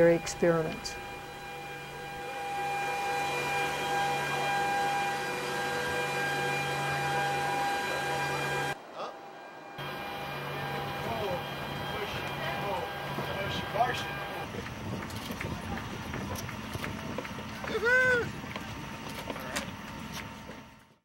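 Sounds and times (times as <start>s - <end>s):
jet cabin rushing hum: 0.0s - 20.9s
steady whine: 0.0s - 21.0s.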